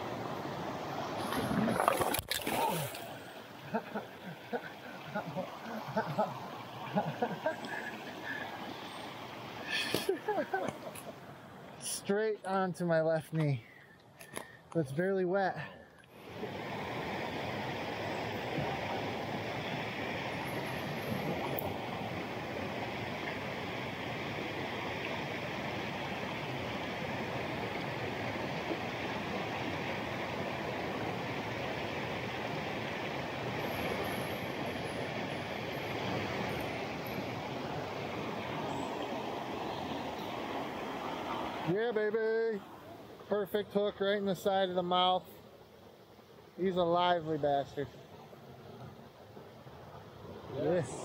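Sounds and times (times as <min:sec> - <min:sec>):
water rushing over rocks: 0:00.0 - 0:11.5, 0:16.2 - 0:41.8.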